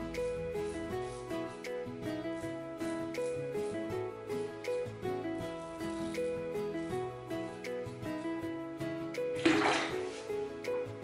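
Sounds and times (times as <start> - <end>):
rush of running water: 9.4 - 10.0.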